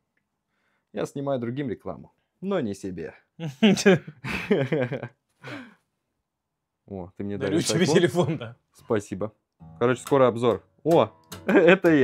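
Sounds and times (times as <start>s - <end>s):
man breathing out: 5.4s - 5.8s
man speaking: 6.9s - 11.0s.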